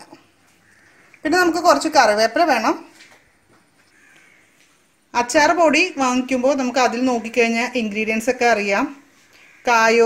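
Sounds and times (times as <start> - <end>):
faint bird call: 3.2 - 4.6, 9.3 - 9.8.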